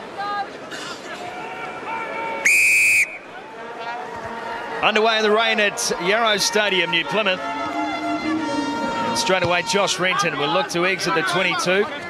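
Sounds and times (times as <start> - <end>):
referee's whistle blast: 2.4 - 3.3.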